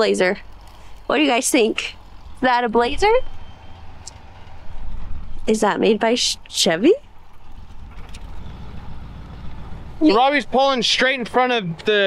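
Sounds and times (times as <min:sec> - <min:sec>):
voice: 0:00.0 - 0:00.4, 0:01.1 - 0:03.2, 0:05.5 - 0:07.0, 0:10.0 - 0:12.0
vehicle engine idling: 0:00.0 - 0:12.0.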